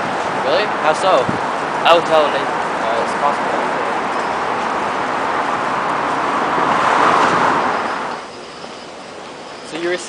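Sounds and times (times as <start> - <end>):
vehicle passing: 0.0 - 8.5
city street traffic: 0.0 - 10.0.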